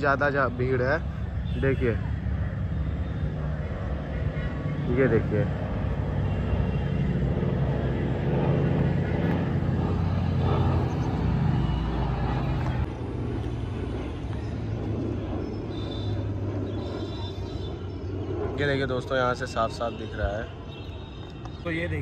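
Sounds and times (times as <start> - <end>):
aircraft engines droning overhead: 0.0 - 22.0.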